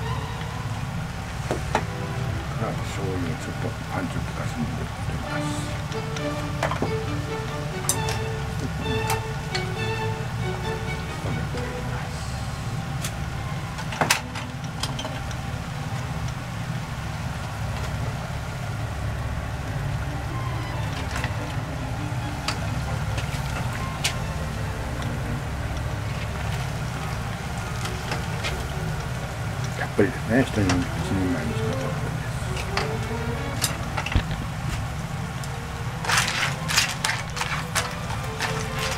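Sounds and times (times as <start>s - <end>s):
stove low rumble: 0.0s - 38.9s
utensils clinking on cookware: 36.0s - 38.9s.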